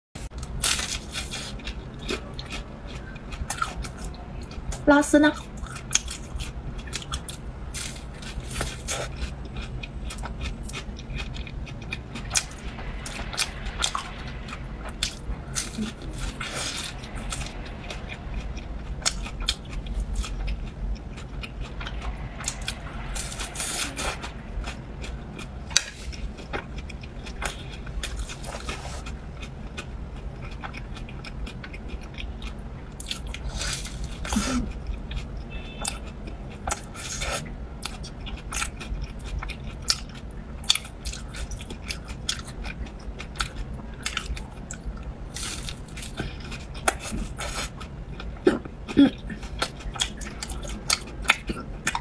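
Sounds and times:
close chewing: 0.4 - 52.0.

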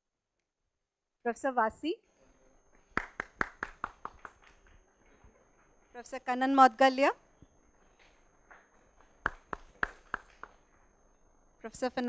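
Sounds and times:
hand clapping: 3.0 - 4.6, 9.2 - 10.6.

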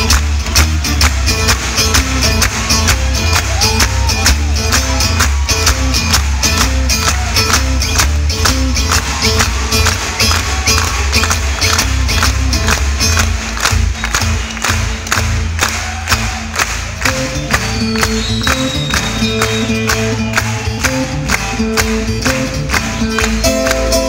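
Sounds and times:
twelve-string guitar playing: 0.0 - 14.4, 17.1 - 24.0.

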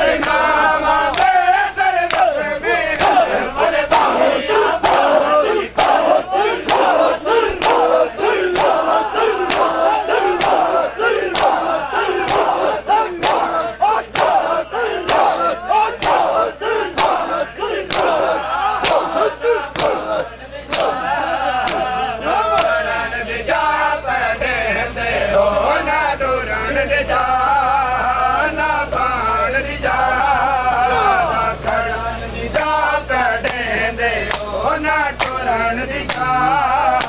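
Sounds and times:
hands slapping chests in unison: 0.2 - 0.4, 1.0 - 1.4, 2.1 - 3.3, 3.9 - 4.2, 4.8 - 21.0, 21.6 - 22.8, 34.3 - 34.5, 35.2 - 35.4, 36.1 - 36.3
men calling out together: 2.2 - 22.8.

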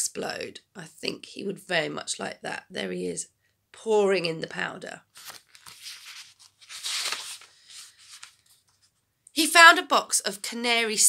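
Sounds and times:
book page turning: 5.1 - 9.0
paper rustling: 5.1 - 9.0.

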